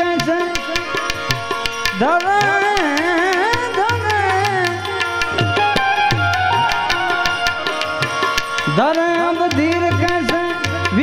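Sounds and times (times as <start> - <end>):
man singing devotional song: 0.0 - 6.2, 7.3 - 11.0
harmonium drone: 0.0 - 11.0.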